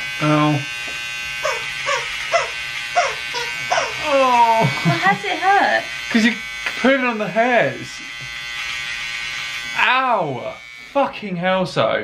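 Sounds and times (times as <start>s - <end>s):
electric beard trimmer buzzing: 0.0s - 12.0s
high falling whimpering cries: 1.4s - 5.1s.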